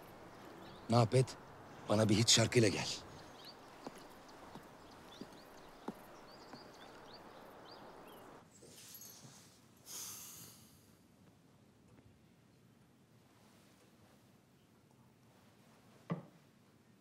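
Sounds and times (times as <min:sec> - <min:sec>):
small birds chirping: 0:00.0 - 0:09.1.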